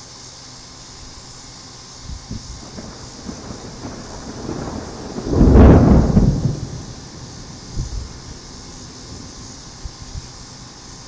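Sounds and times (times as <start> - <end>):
steady hiss: 0.0 - 11.0
thunder rumbling: 2.2 - 11.0.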